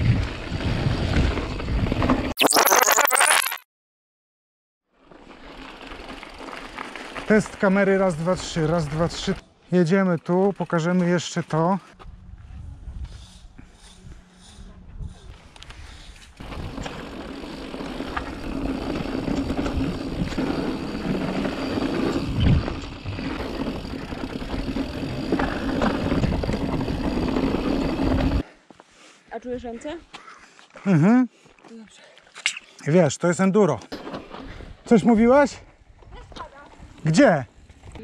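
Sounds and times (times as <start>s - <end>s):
wind noise: 0.0s - 2.2s, 12.0s - 17.2s, 18.1s - 28.4s
bicycle tyres on dirt trail: 0.0s - 2.3s, 4.9s - 32.4s, 33.7s - 38.0s
bike rattling: 0.0s - 2.3s, 5.0s - 11.6s, 15.7s - 28.4s.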